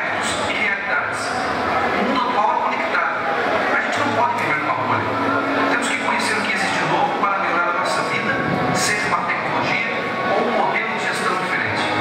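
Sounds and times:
indistinct voices: 0.0 - 12.0
video audio over hall loudspeakers: 0.0 - 12.0.

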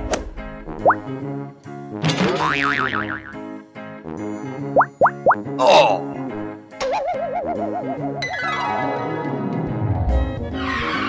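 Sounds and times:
wobbling boing: 2.4 - 3.4.

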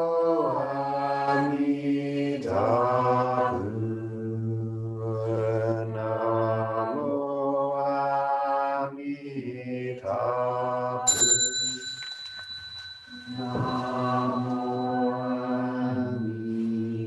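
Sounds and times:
voices chanting on long notes: 0.0 - 11.1, 13.1 - 17.0
bell ringing: 11.1 - 17.0.

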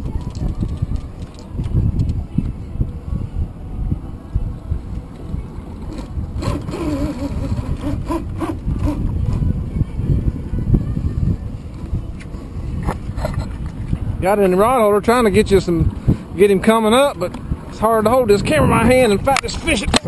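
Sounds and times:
rod and reel clicks: 0.0 - 2.2, 5.9 - 9.4
boat noise: 0.0 - 20.0
wind buffeting microphone: 0.0 - 20.0.

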